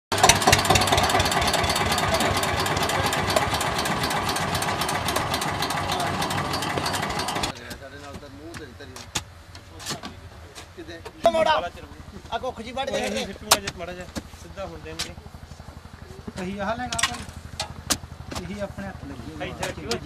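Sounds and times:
tractor diesel engine knocking: 0.1s - 7.6s.

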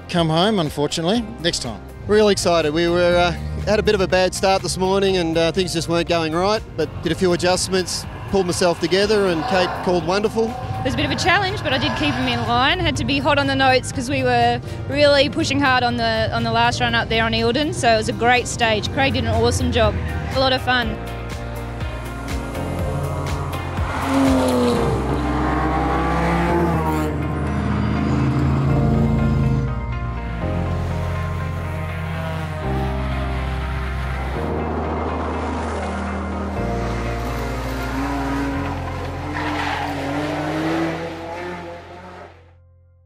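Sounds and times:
background music with low notes: 0.0s - 43.0s
rally car engines revving: 1.4s - 42.5s.

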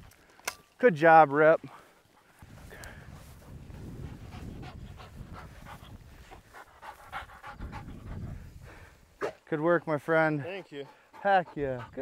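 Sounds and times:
rustling in dry grass: 1.6s - 9.2s
dog panting: 3.2s - 8.9s, 10.2s - 12.0s.

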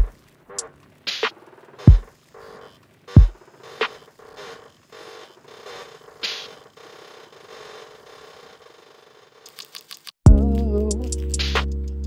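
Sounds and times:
creaking mechanical textures: 0.0s - 11.4s.

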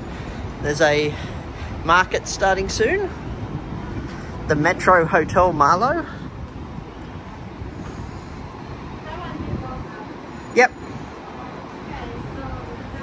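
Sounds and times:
faint voices of passers-by: 0.0s - 13.0s
traffic hum: 0.0s - 13.0s.

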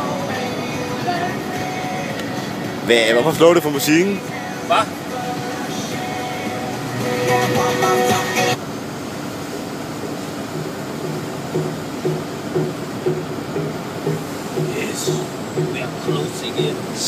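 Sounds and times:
music: 0.0s - 8.6s, 10.6s - 16.8s
truck engine and road rumble: 0.0s - 17.0s
soft regular pulses: 9.0s - 17.0s.

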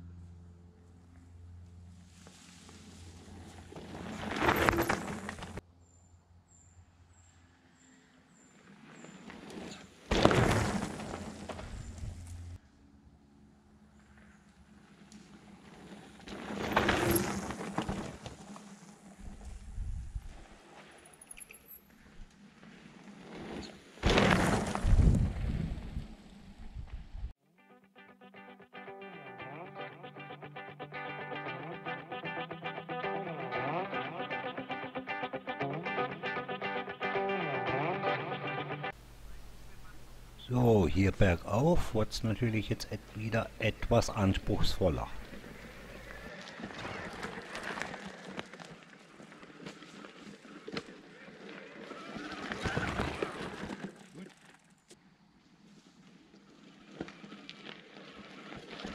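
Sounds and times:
mountain bikes riding past: 0.1s - 5.6s, 7.2s - 27.3s, 43.8s - 58.9s
guitar music: 27.6s - 39.0s.

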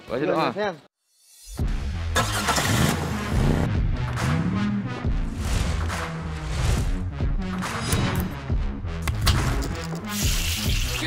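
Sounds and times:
background music: 0.0s - 11.0s
car engine starting and revving: 2.0s - 6.2s.

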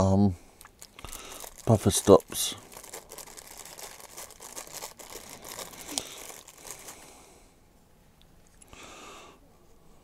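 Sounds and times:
plastic wrapping crinkling: 0.6s - 7.2s.

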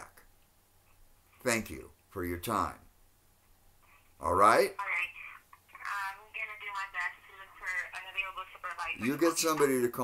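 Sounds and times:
person talking over telephone: 4.5s - 10.0s.

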